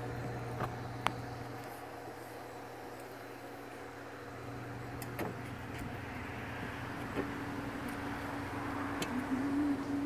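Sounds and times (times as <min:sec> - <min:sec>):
low electric hum: 0:00.0 - 0:10.0.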